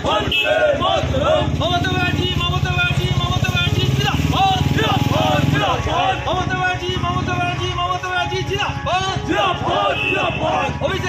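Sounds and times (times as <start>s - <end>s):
crowd shouting slogans: 0.0s - 2.2s, 4.2s - 7.1s, 8.3s - 11.0s.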